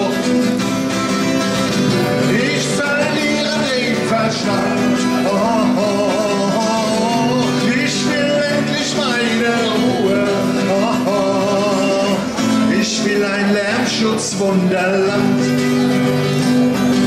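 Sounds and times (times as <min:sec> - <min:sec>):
man singing: 0:00.0 - 0:17.0
strummed acoustic guitar: 0:00.0 - 0:17.0.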